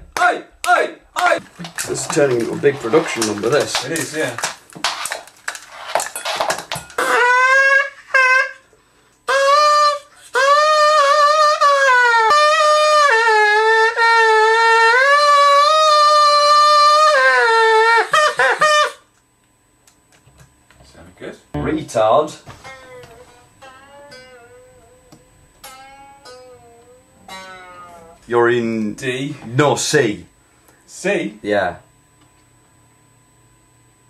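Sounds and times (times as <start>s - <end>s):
reedy wind instrument melody: 9.3s - 18.4s, 21.6s - 28.3s.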